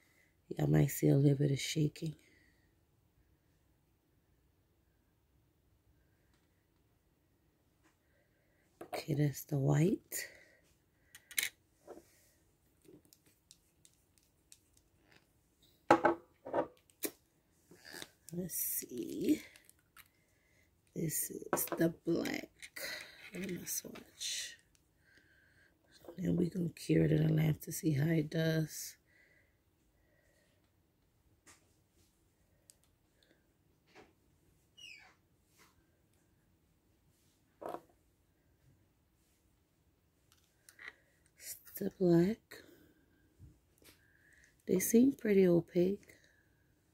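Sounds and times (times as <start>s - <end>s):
bottle knocking on a table: 15.9s - 16.7s.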